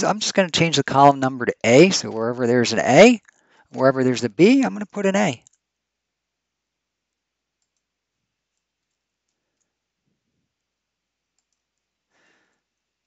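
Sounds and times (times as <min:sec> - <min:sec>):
keyboard and mouse clicks: 0:07.6 - 0:07.9, 0:11.4 - 0:11.8.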